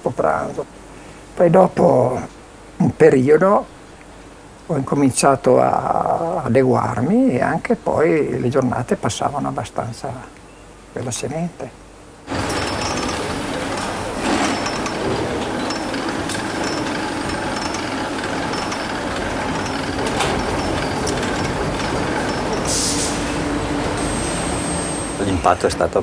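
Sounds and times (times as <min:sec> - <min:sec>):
sharp metallic knocks: 0:12.3 - 0:22.8
machinery din: 0:12.3 - 0:25.6.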